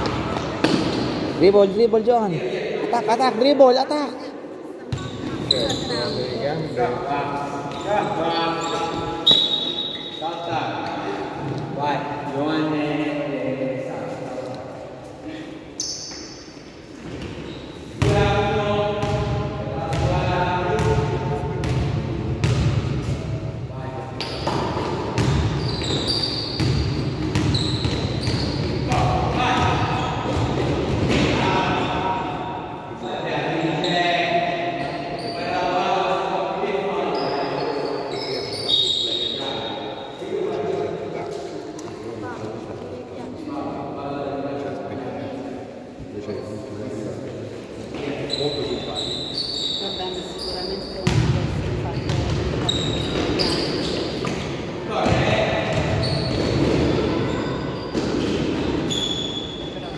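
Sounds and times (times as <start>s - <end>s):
basketball bouncing on gym floor: 24.2s - 31.4s, 51.0s - 53.6s, 54.2s - 57.2s.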